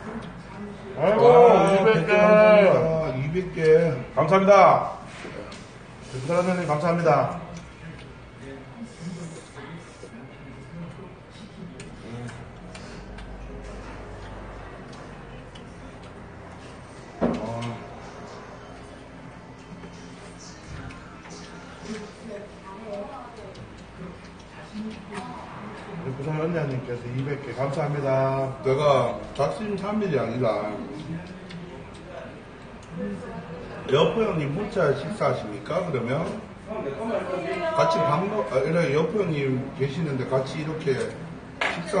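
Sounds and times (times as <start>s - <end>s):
murmur of voices: 0.0s - 42.0s
chewing smacks: 11.7s - 16.3s.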